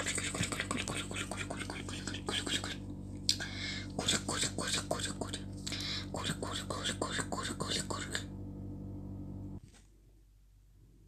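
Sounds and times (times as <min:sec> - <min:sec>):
person whispering: 0:00.0 - 0:08.3
low electrical hum: 0:00.0 - 0:11.0.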